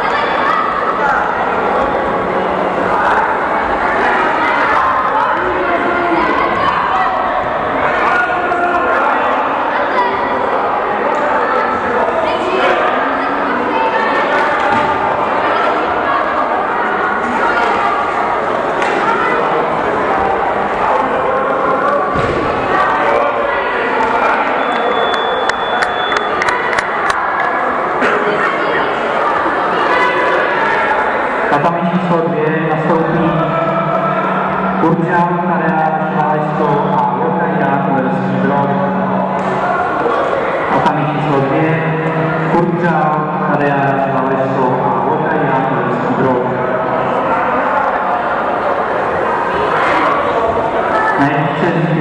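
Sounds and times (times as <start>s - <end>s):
crowd chatter and shouting: 0.0s - 52.0s
spectators cheering: 13.5s - 31.6s, 32.5s - 43.2s.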